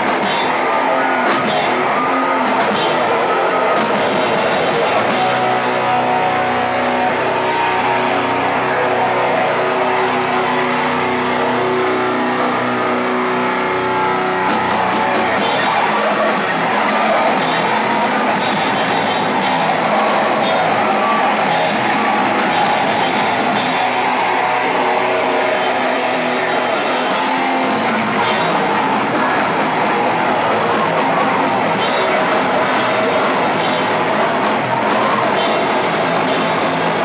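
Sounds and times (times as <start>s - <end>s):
distorted electric guitar chords: 0.0s - 37.0s
drums and cymbal crashes: 0.0s - 37.0s.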